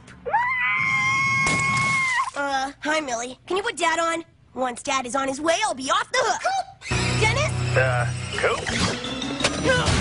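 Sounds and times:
girl screaming: 0.3s - 2.7s.

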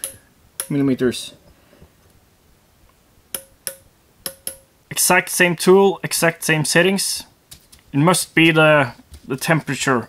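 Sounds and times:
sharp metallic clicks: 0.0s - 0.8s, 3.3s - 4.7s.

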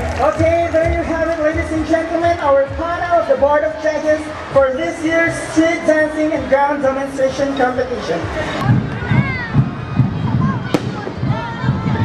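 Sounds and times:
sharp firework bang: 10.7s - 11.5s
fireworks bursting: 10.7s - 12.0s.

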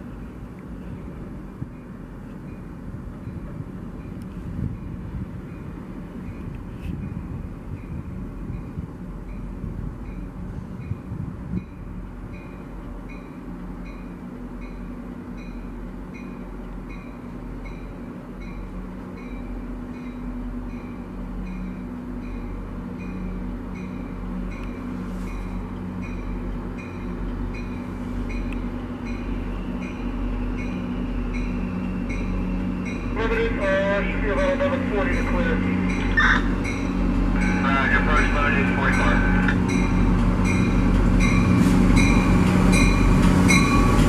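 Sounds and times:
diesel train engine running: 0.0s - 44.0s.

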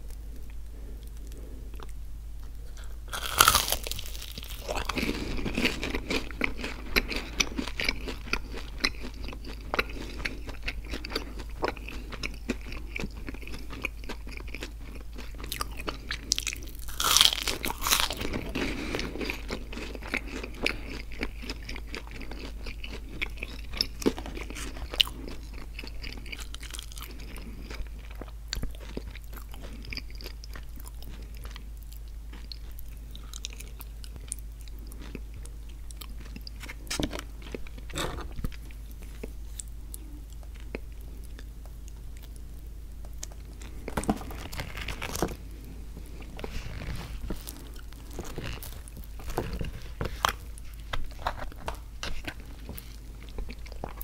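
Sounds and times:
crunchy biting and chewing: 0.5s - 54.0s.

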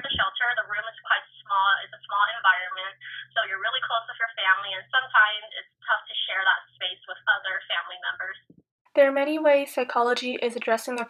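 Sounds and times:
woman talking on telephone: 0.0s - 11.0s.

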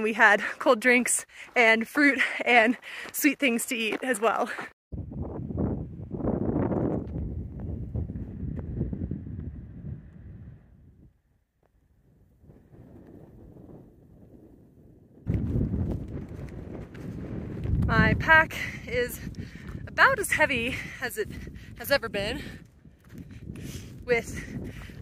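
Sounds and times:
wind buffeting microphone: 4.9s - 25.0s.

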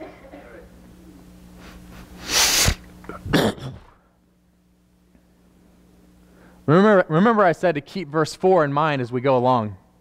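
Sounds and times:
noisy bursts of breath: 1.6s - 2.9s, 6.2s - 6.7s.

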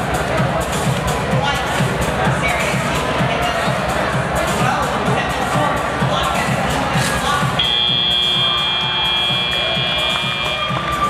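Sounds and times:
background music: 0.0s - 11.0s
crowd noise: 0.0s - 11.0s
buzzer high tone: 7.6s - 10.8s.

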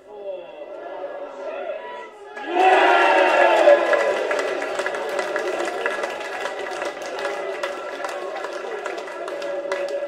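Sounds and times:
crowd chatter: 0.0s - 10.0s
football crowd shouting: 0.7s - 10.0s
scattered clapping: 2.4s - 10.0s.

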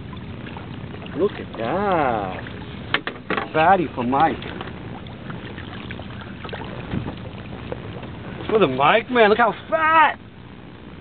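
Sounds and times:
wind noise on microphone: 4.5s - 8.7s.

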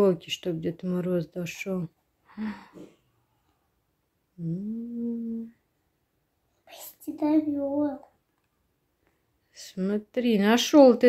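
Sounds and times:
person humming: 4.4s - 5.5s.

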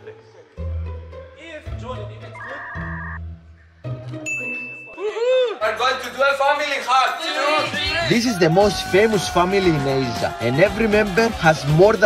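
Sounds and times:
quiet background music: 0.0s - 6.6s
bright ding: 4.2s - 5.1s.

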